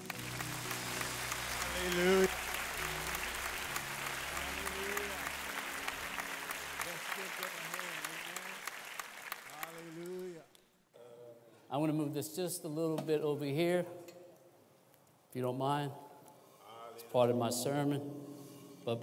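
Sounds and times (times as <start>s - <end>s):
congregation applauding: 0.0s - 10.5s.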